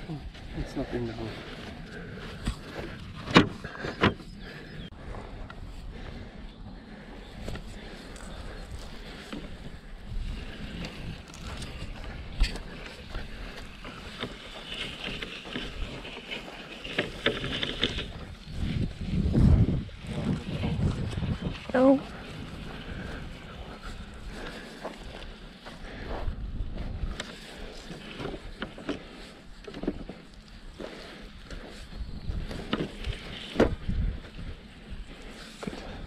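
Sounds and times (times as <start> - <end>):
wind rumbling on microphone: 0.0 - 28.8, 29.4 - 36.0.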